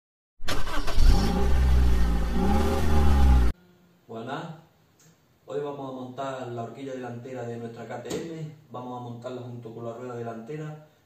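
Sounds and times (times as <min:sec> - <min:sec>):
engine revving loudly: 0:00.5 - 0:03.5.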